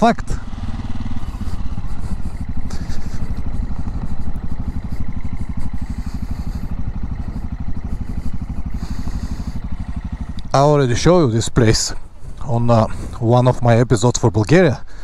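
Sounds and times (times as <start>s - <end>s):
motorcycle engine running: 0.0s - 15.0s.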